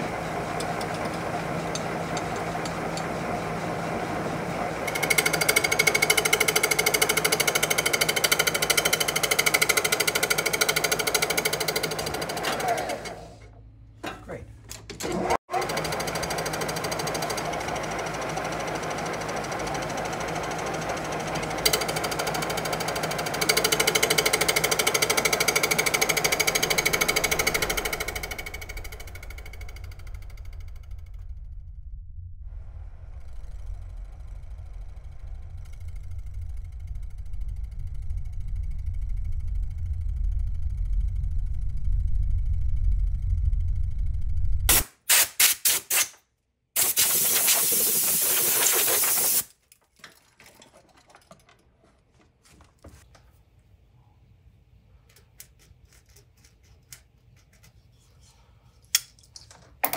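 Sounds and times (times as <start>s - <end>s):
lathe running: 0.0s - 13.3s, 15.1s - 30.2s.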